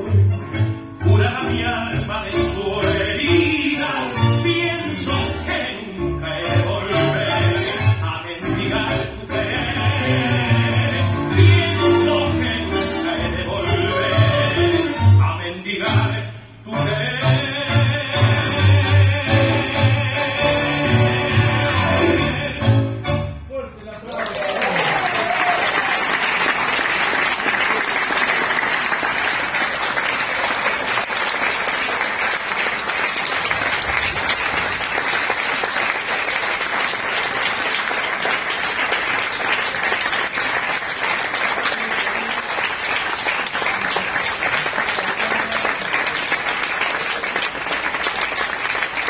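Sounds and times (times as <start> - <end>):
music: 0.0 - 23.6
audience applause: 24.0 - 49.0.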